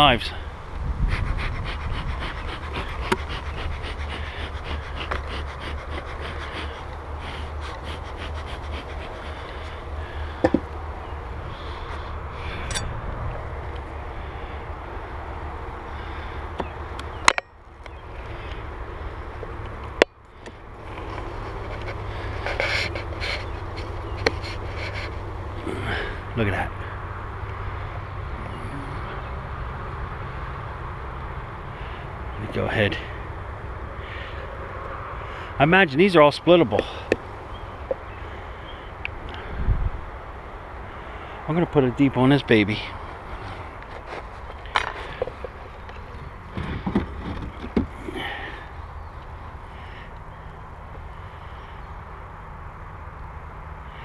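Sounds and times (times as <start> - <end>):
steady low rumble: 0.0 - 17.1
wooden boxes clicking and scraping: 43.5 - 48.3.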